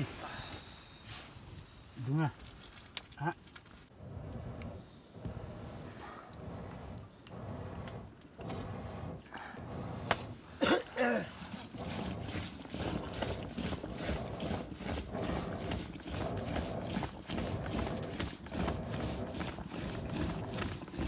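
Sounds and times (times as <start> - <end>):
churning stick swishing and knocking: 4.0 - 21.0.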